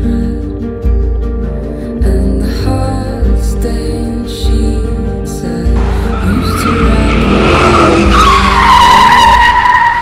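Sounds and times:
tyres screeching in a skid: 6.1 - 10.0.

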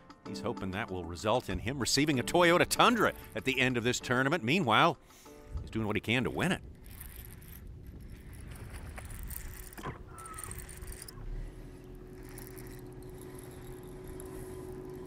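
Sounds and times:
wind: 0.0 - 15.0
trolling motor hum: 1.2 - 4.0, 5.4 - 15.0
water noise: 6.4 - 15.0
fishing rod whoosh: 6.6 - 15.0.

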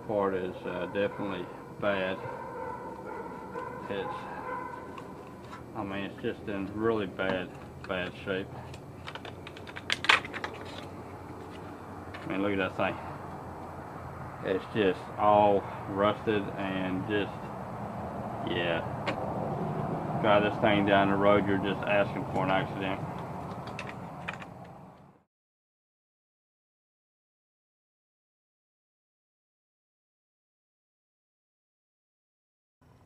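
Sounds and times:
low steady background hum: 0.0 - 25.0
hands tapping metal parts: 6.6 - 12.4, 22.3 - 24.7.

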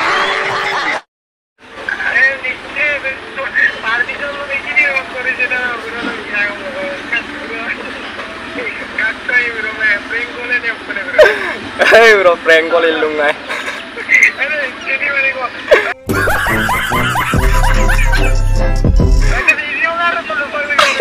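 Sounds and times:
studio audience laughing: 15.7 - 18.6.

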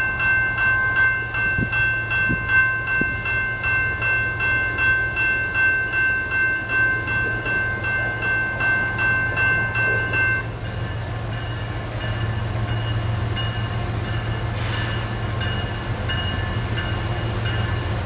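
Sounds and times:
railroad crossing bell ringing: 0.0 - 18.0.

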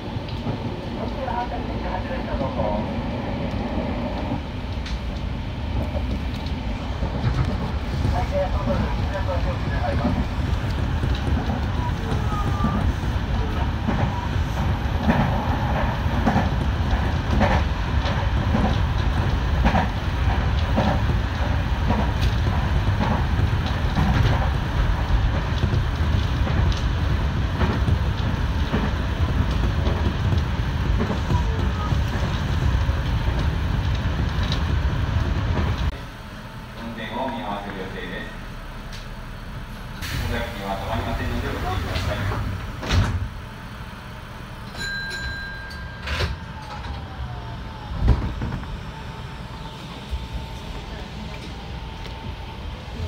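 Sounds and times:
train wheels rumbling: 0.0 - 53.0.

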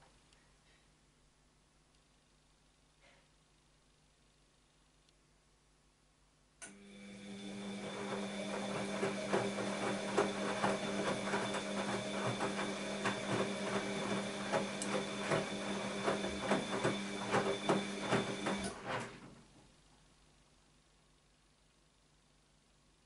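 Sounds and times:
washing machine motor hum: 6.7 - 19.6
clothes splashing and knocking in drum: 8.9 - 18.7.

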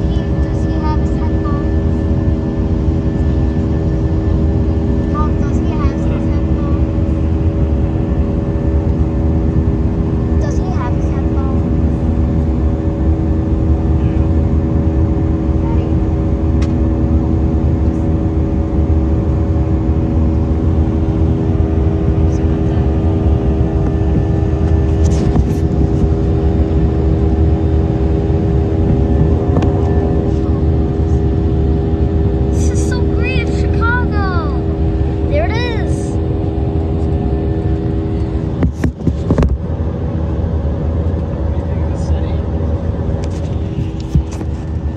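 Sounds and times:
jet engine cabin rumble: 0.0 - 44.9.

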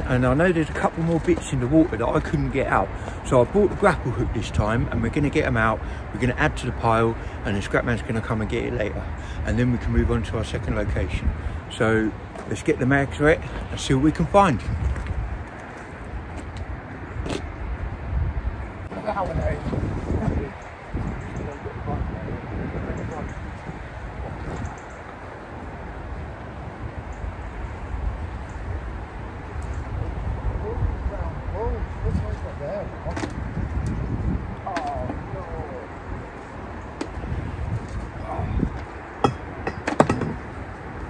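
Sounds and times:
faint voices: 34.6 - 36.5, 38.1 - 39.4.

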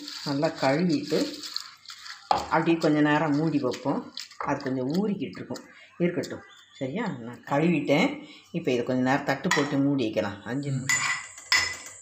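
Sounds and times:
woman talking: 0.0 - 1.5, 2.3 - 10.9
metal lid clinking on dishes: 10.9 - 12.0.

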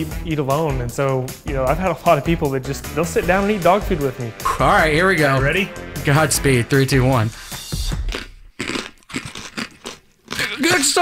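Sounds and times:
people crunching dry kibble: 7.8 - 11.0.

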